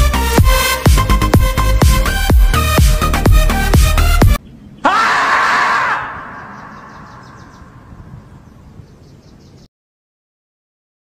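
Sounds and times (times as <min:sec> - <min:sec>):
electronic dance music: 0:00.0 - 0:04.4
loud drawn-out scream: 0:04.8 - 0:07.5.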